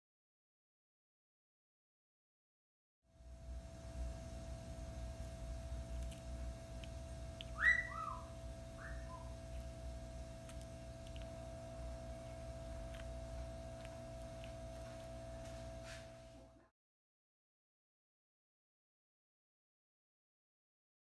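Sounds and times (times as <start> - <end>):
electrical hum: 3.1 - 16.7
short whistled notes: 7.6 - 9.3.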